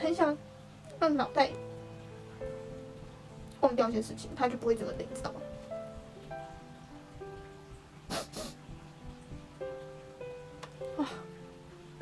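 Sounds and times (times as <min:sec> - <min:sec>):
person sniffing: 0:08.1 - 0:08.6.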